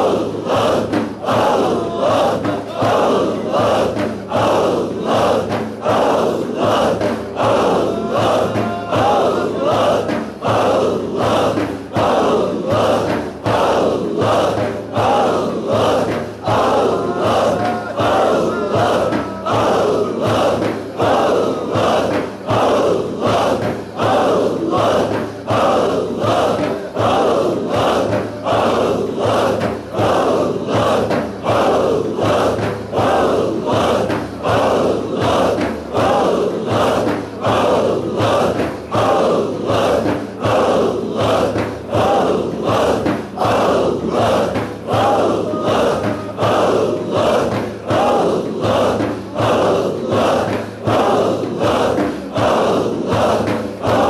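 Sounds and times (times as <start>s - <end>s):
group chanting in unison: 0.0s - 54.0s.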